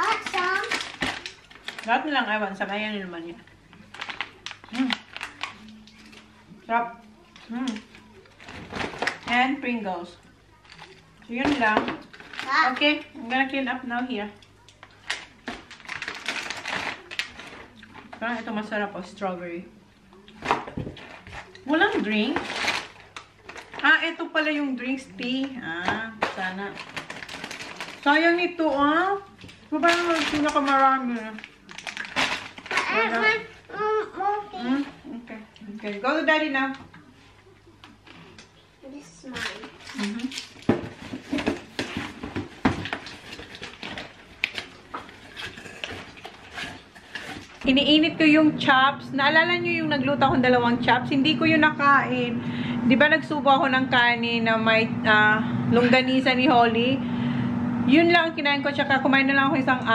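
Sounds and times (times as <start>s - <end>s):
snack wrappers crinkling: 0.0s - 2.1s, 3.6s - 6.4s, 10.6s - 13.1s, 14.4s - 18.2s, 20.3s - 23.9s, 26.2s - 28.2s, 29.4s - 33.7s, 39.2s - 47.9s.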